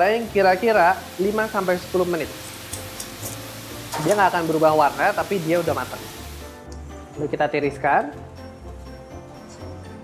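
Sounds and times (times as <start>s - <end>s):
potatoes sizzling in oil: 0.0s - 6.6s.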